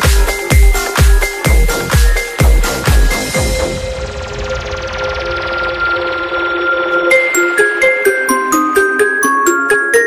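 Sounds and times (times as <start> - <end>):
held synth notes: 0.6 - 9.8
rushing noise sweep: 3.1 - 7.4.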